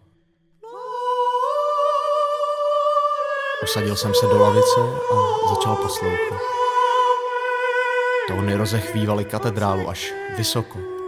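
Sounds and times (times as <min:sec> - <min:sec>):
person singing a long high note: 0:00.6 - 0:11.0.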